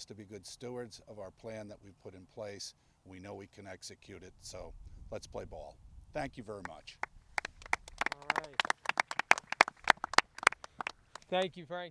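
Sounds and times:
people clapping: 0:06.6 - 0:11.6.

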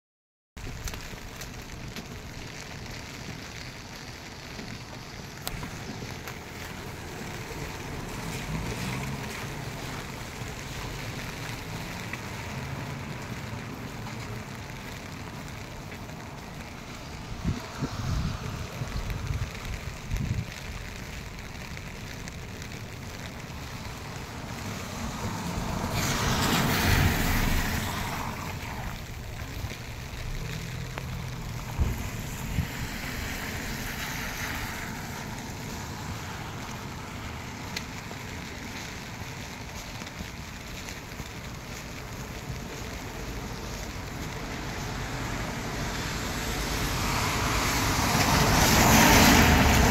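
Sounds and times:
car tyres hissing on wet road: 0:00.6 - 0:49.9
rain on wet street: 0:00.6 - 0:49.9
wind buffeting microphone: 0:17.0 - 0:21.5.

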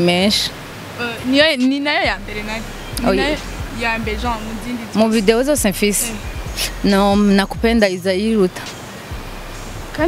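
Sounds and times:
woman speaking: 0:00.0 - 0:06.2, 0:06.8 - 0:08.7
steady hiss: 0:00.0 - 0:10.0.

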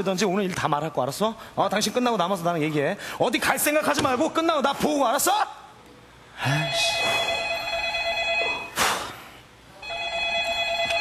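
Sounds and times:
telephone trilling ring: 0:06.7 - 0:08.8, 0:09.8 - 0:11.0.

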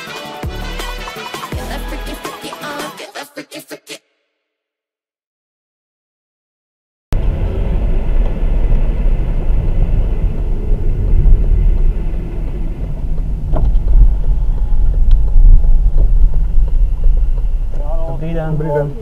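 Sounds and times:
car engine and tyre rumble: 0:07.2 - 0:19.0.

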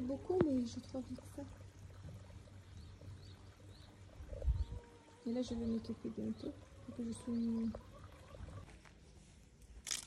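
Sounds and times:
wind rumble on microphone: 0:04.2 - 0:04.9.

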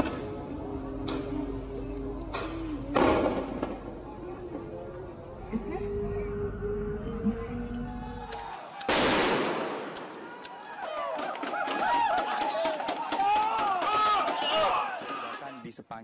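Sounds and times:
people shouting: 0:07.9 - 0:09.0, 0:09.9 - 0:15.6
sharp bangs and pops: 0:08.8 - 0:10.6.

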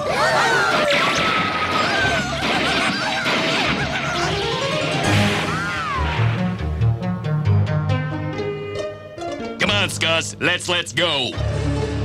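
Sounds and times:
cartoon explosions and crashes: 0:00.0 - 0:06.8
orchestral music: 0:04.8 - 0:12.0.

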